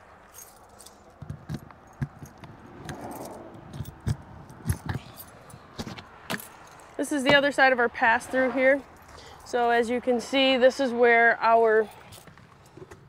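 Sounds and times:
keys jangling: 0.2 - 7.0.

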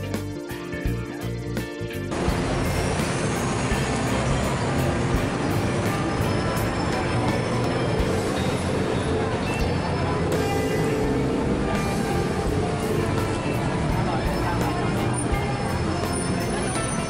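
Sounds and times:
city street traffic: 0.0 - 17.0
music with steady beat: 0.0 - 17.0.

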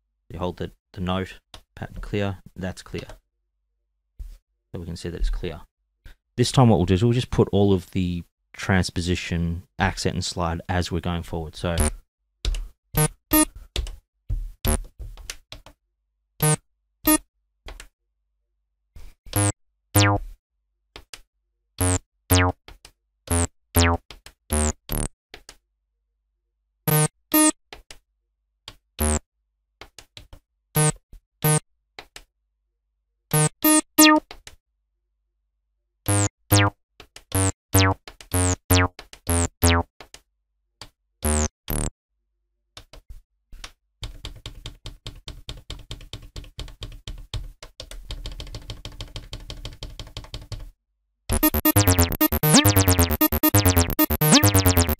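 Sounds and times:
bass synthesizer notes: 19.4 - 20.2, 21.8 - 22.5, 23.3 - 25.1, 36.1 - 36.7, 37.4 - 39.9, 41.3 - 41.9, 51.3 - 54.9.

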